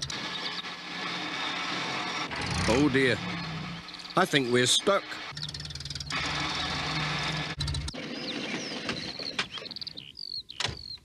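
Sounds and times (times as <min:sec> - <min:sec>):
van engine running: 0:00.0 - 0:09.4
wheel spinning in soil: 0:00.0 - 0:09.7
birds chirping: 0:02.4 - 0:11.0.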